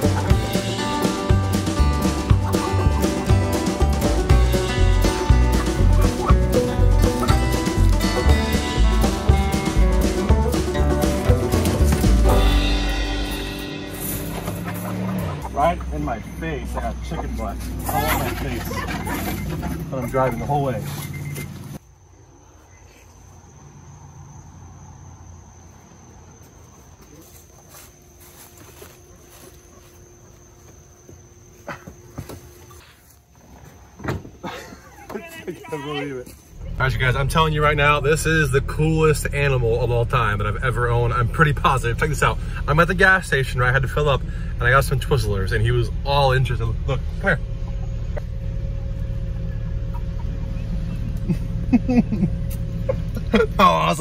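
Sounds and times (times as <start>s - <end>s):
car idling inside cabin: 36.6s - 54.0s.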